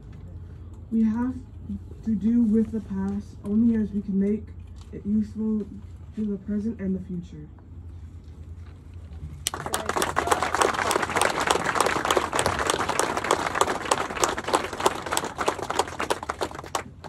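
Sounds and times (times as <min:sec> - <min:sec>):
audience applauding: 0:09.4 - 0:17.0.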